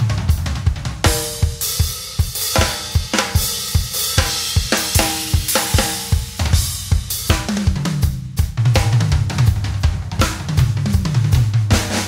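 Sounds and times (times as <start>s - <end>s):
bass drum and snare groove: 0.0s - 12.0s
cymbals ringing: 1.1s - 6.3s.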